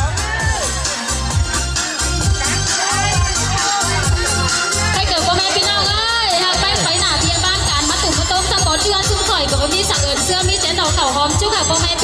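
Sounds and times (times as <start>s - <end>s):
backing music with low beat: 0.0s - 12.0s.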